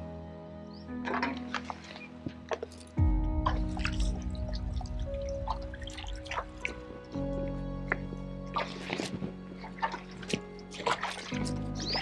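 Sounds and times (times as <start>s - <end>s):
music with held chords: 0.0s - 12.0s
water dripping and splashing: 1.0s - 12.0s.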